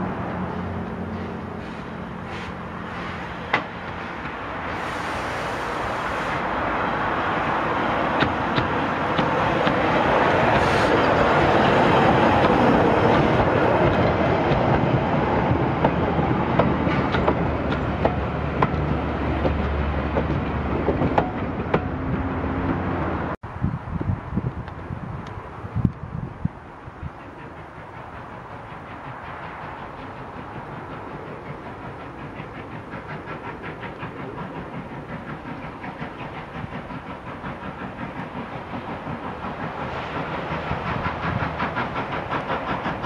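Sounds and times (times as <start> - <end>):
steam locomotive passing: 0.0 - 43.0
train wheels clicking over rail joints: 0.4 - 22.9, 26.8 - 43.0.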